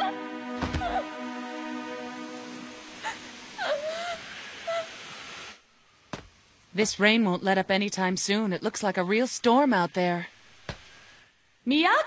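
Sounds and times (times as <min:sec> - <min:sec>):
girl sobbing: 0:00.0 - 0:01.3, 0:03.0 - 0:05.0
background music: 0:00.0 - 0:04.1
rain hiss: 0:00.0 - 0:11.7.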